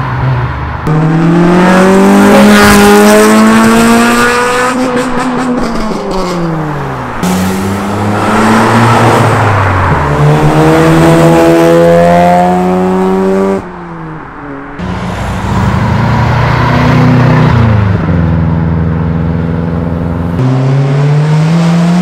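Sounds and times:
rotary engine accelerating: 0:00.8 - 0:06.6, 0:07.2 - 0:13.6, 0:14.8 - 0:22.0
four-cylinder car engine revving: 0:00.8 - 0:13.6, 0:14.8 - 0:22.0.

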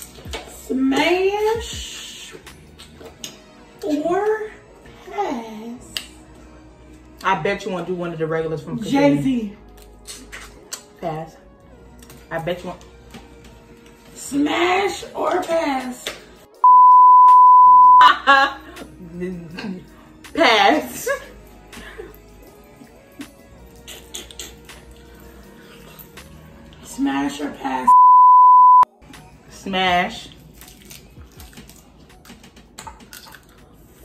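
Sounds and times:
faint background music: 0:00.0 - 0:16.7, 0:17.8 - 0:28.0, 0:28.9 - 0:34.0
censor bleep tone: 0:16.6 - 0:18.1, 0:27.9 - 0:28.9
crab shells cracking: 0:30.5 - 0:33.6.

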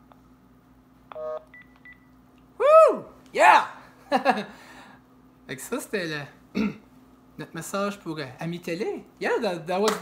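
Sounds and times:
keypad tone: 0:01.1 - 0:02.1.

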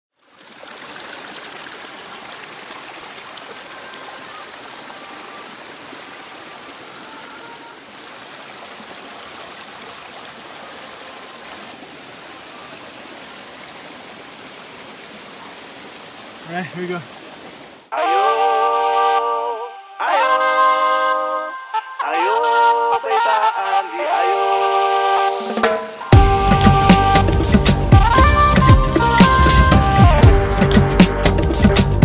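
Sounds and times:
flowing water rushing: 0:00.1 - 0:17.9, 0:24.3 - 0:30.0.

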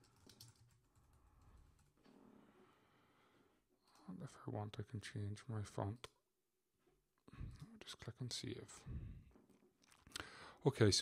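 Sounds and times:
faint typing on keyboard: 0:00.0 - 0:02.1.

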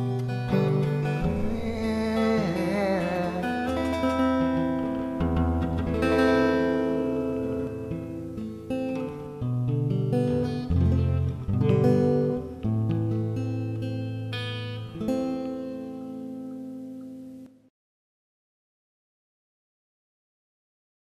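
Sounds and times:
acoustic guitar playing: 0:00.0 - 0:17.7.

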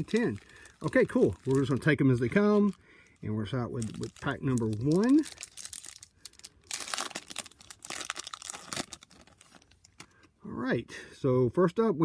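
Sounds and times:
card pack wrapper tearing and crinkling: 0:00.0 - 0:10.2.

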